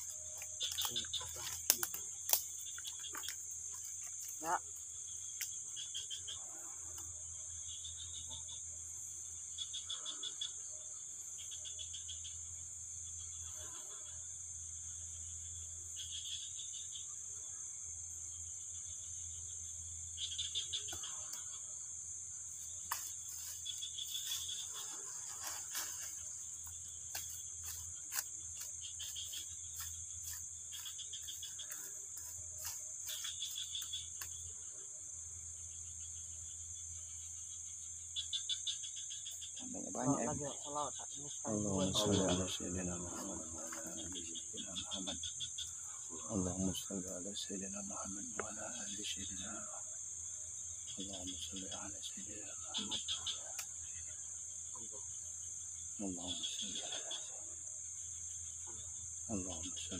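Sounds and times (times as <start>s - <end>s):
frogs chirping: 0.0s - 59.9s
insect drone: 0.0s - 59.9s
bamboo leaves rustling: 22.9s - 33.9s.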